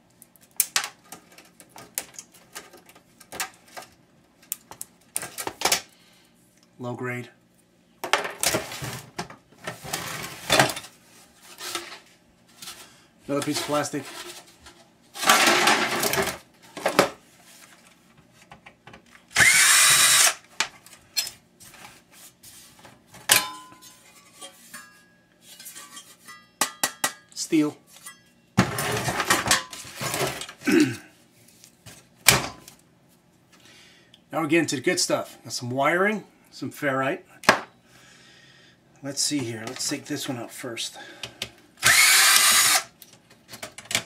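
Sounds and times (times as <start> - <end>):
plastic parts clattering: 12.6 - 17.2, 28.6 - 30.6.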